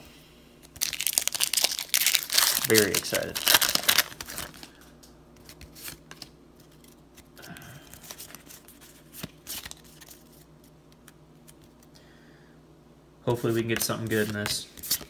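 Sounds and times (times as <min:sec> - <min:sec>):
foil pack crinkling: 0:00.7 - 0:04.9
trading cards rustling: 0:00.8 - 0:11.9, 0:13.7 - 0:15.0.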